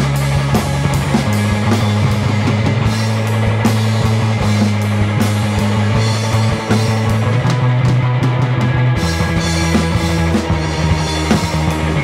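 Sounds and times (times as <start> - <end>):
drum kit with cymbals: 0.0 - 12.0
electric bass: 0.0 - 12.0
guitar: 0.0 - 12.0.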